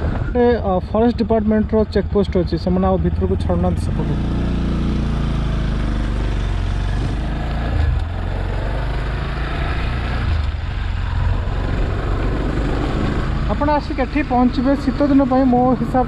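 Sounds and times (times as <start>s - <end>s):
motorcycle engine running: 0.0s - 16.0s
wind and road noise: 0.0s - 16.0s.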